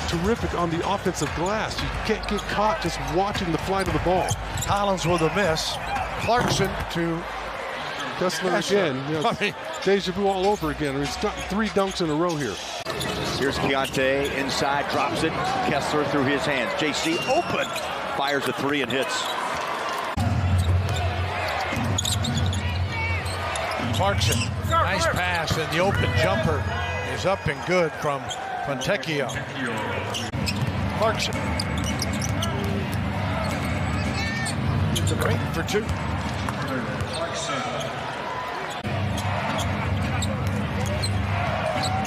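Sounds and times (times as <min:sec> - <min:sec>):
arena crowd cheering: 0:00.0 - 0:42.0
sneakers squeaking: 0:02.2 - 0:03.2, 0:03.8 - 0:06.9, 0:16.9 - 0:26.7, 0:28.2 - 0:42.0.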